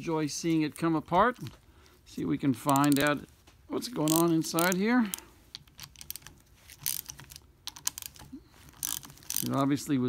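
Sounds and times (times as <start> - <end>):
wrench clicking on metal bolts: 2.6 - 3.2, 4.0 - 9.5.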